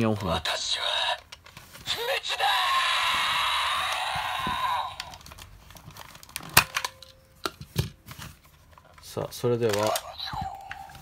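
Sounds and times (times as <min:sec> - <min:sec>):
plastic toy clicks and knocks: 0:09.6 - 0:10.8
toy speaker electronic sound effect: 0:09.8 - 0:11.0.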